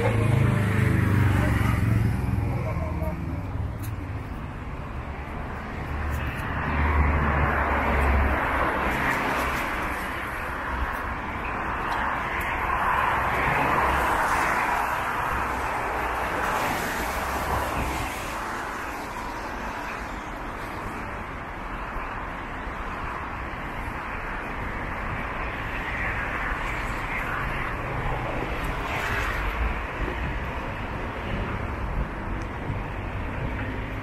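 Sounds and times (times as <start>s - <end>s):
vehicle passing on wet street: 0.0s - 4.2s.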